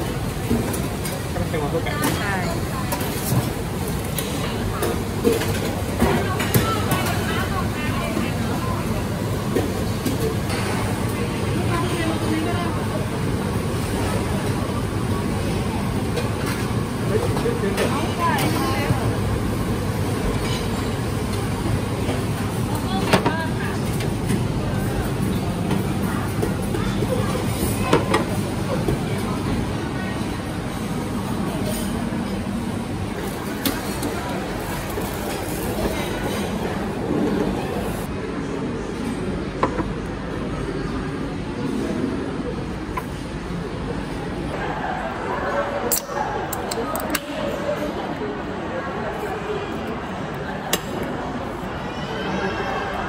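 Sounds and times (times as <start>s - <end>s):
faint indistinct voices: 0.0s - 53.0s
low restaurant rumble: 0.0s - 53.0s.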